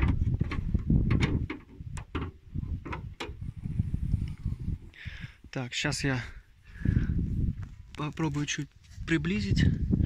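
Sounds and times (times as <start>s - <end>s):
car hood latch clicks and knocks: 0.0s - 3.4s.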